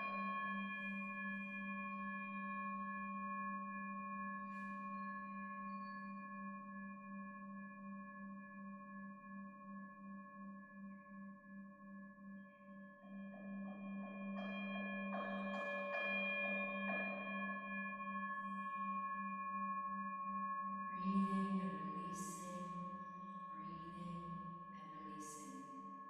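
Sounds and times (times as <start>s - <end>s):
singing bowl ringing: 13.1s - 26.0s.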